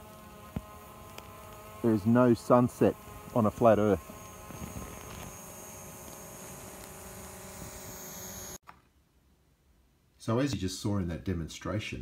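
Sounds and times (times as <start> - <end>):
drone propellers buzzing: 0.0 - 8.6.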